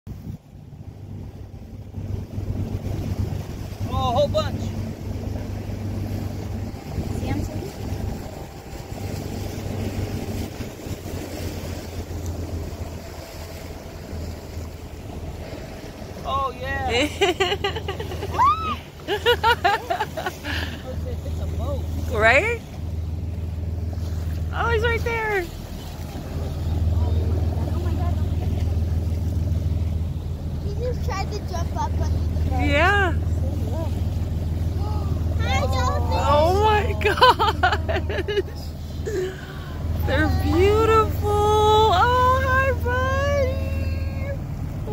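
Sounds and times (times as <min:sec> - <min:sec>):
boat engine humming: 0:00.0 - 0:44.9
wind buffeting microphone: 0:00.1 - 0:16.9
water washing along hull: 0:00.1 - 0:44.9
woman exclaiming: 0:18.2 - 0:18.9, 0:39.3 - 0:44.9.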